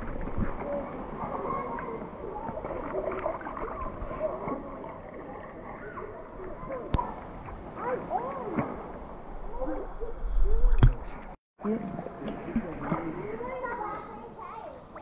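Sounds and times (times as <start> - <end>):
creek water lapping and gurgling: 0.0 - 15.0.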